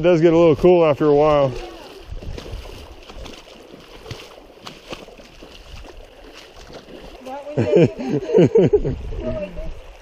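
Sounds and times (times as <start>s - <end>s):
flowing water wash: 0.0s - 10.0s
water splashing with footsteps: 0.0s - 10.0s.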